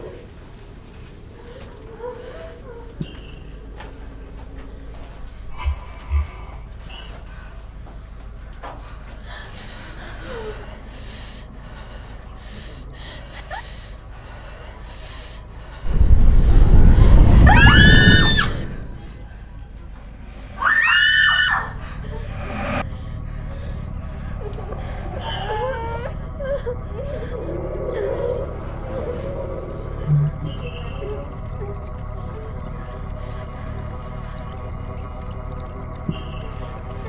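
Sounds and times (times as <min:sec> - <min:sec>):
loud deep rumble: 0:15.6 - 0:20.4, 0:21.5 - 0:37.0
children screaming: 0:15.9 - 0:19.4, 0:20.6 - 0:22.8.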